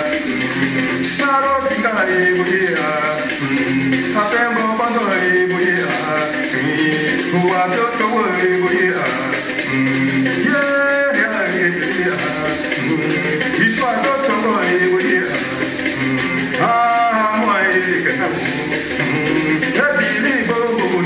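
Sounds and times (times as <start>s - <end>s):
man singing: 0.0s - 21.0s.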